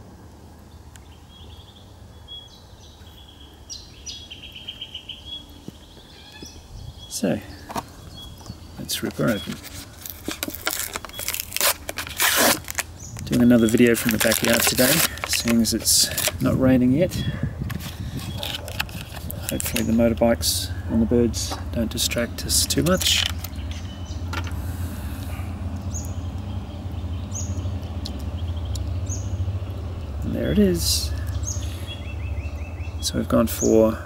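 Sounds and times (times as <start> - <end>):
low outdoor rumble: 0.0 - 34.0
small bird chirping: 0.7 - 11.4, 22.9 - 24.3, 25.3 - 33.8
plastic blister pack tearing: 9.0 - 16.6, 17.7 - 20.0, 22.6 - 23.6.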